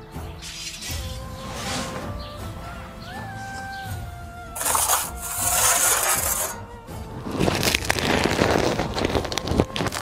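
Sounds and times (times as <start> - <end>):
metal peel scraping on stone: 0.4 - 2.3, 4.6 - 6.7.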